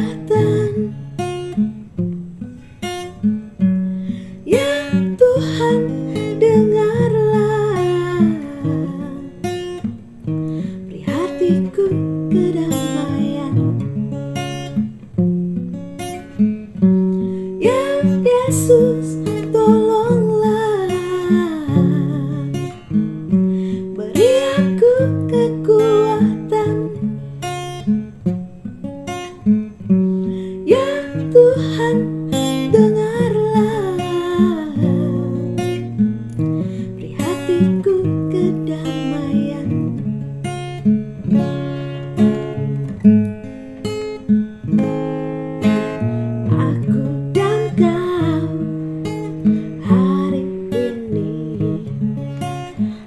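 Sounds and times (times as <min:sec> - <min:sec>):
acoustic guitar: 0:00.0 - 0:53.0.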